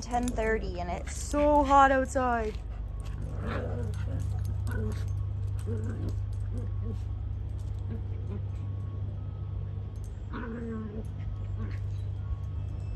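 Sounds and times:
small dogs playing: 0.0 - 12.9
steady low hum: 0.0 - 12.9
dog whining: 1.2 - 9.0, 10.2 - 12.5.

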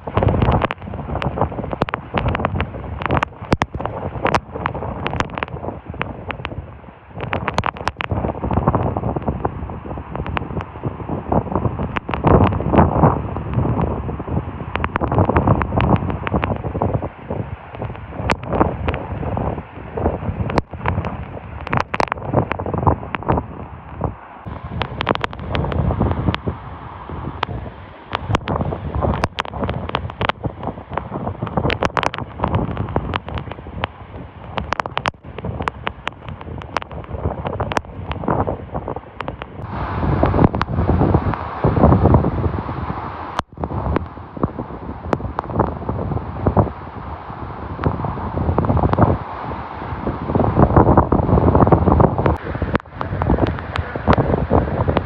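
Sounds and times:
waterfall crashing into pool: 0.0 - 23.4, 24.0 - 38.3, 39.2 - 55.0
sharp crackles: 0.0 - 55.0
wind buffeting microphone: 0.0 - 55.0.

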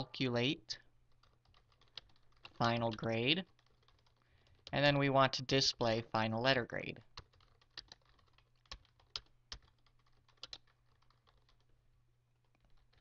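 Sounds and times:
faint low hum: 0.0 - 13.0
computer keyboard typing: 1.1 - 4.9, 7.0 - 11.8, 12.4 - 13.0.

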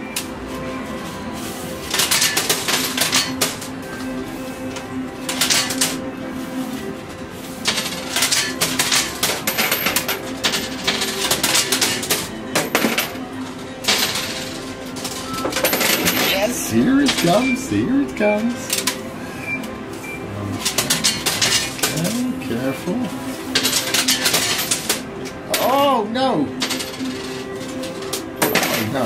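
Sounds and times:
coins clattering on metal: 1.8 - 4.1, 4.7 - 6.0, 7.6 - 13.2, 13.8 - 17.7, 18.6 - 19.0, 20.6 - 22.4, 23.2 - 25.9, 26.5 - 29.0.

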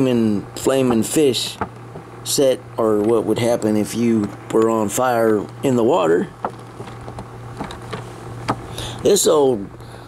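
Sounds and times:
low electrical hum: 0.0 - 10.0
breath drawn: 8.7 - 9.0.

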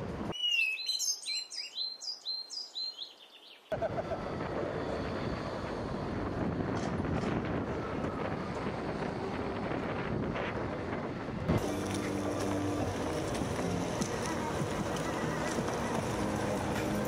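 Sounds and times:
road rumble: 3.7 - 17.0
steady low hums: 3.7 - 17.0
wind buffeting microphone: 4.0 - 17.0.

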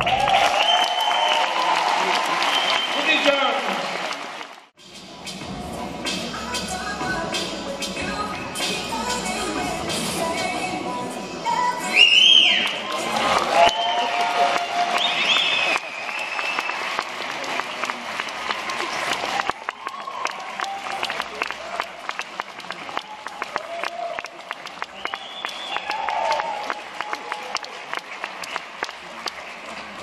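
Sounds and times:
audience applauding: 0.0 - 4.7, 12.5 - 30.0.

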